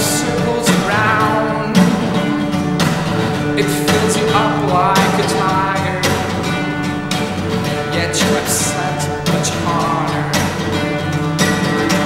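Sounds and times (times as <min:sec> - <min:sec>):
man singing: 0:00.0 - 0:07.1, 0:07.8 - 0:12.0
acoustic guitar strumming: 0:00.0 - 0:12.0.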